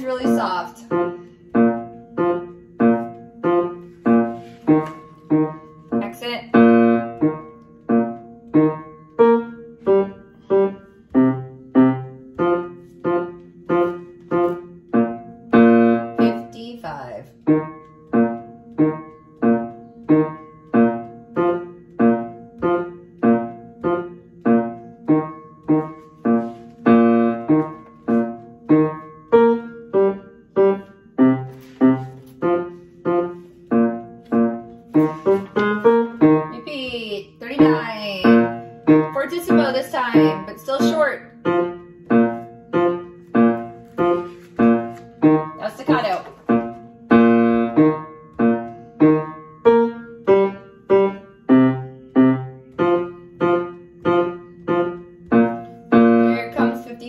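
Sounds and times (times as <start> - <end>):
upright piano notes: 0.0 - 57.0.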